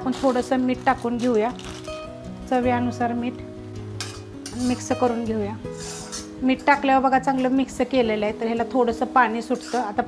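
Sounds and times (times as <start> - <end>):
spatula scraping iron pan: 0.0 - 0.7, 4.0 - 6.7, 9.4 - 10.0.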